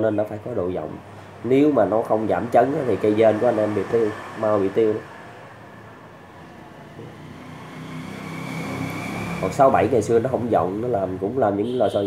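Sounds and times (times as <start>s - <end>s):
vehicle engine humming: 1.0s - 11.3s.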